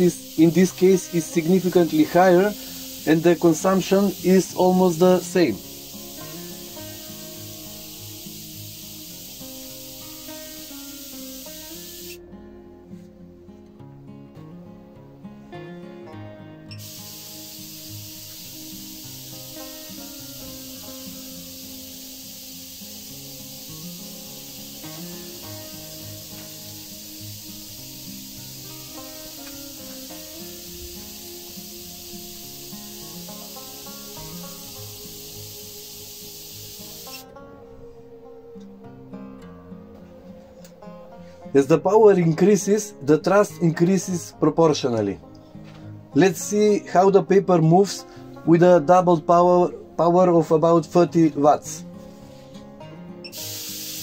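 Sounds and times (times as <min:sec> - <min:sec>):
high hiss of electrical discharge: 0:00.0 - 0:12.2, 0:16.7 - 0:37.3, 0:53.3 - 0:54.0
background music: 0:00.0 - 0:54.0.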